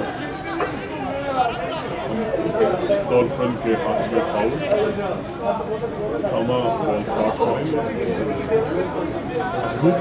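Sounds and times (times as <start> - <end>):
background chatter: 0.0 - 10.0
live match commentary: 0.0 - 10.0.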